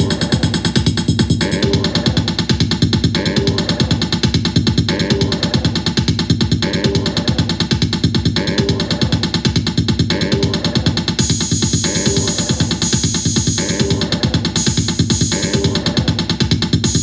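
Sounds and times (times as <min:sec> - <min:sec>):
sampler looping rapid pulses: 0:00.0 - 0:17.0.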